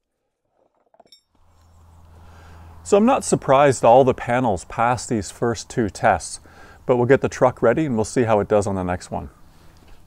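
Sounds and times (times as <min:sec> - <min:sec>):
faint ringing clink: 0:01.0 - 0:01.9
low steady hum: 0:01.4 - 0:10.0.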